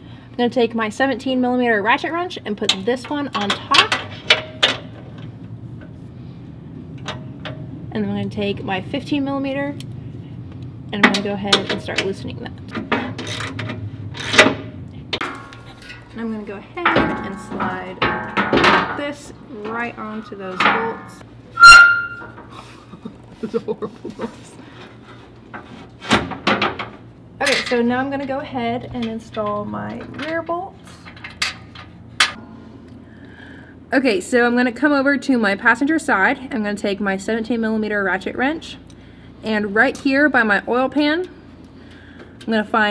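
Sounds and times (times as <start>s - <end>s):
low hum: 3.9s - 24.6s, 26.8s - 33.9s
metal plate scraping and knocking: 15.2s - 16.2s, 16.8s - 22.5s.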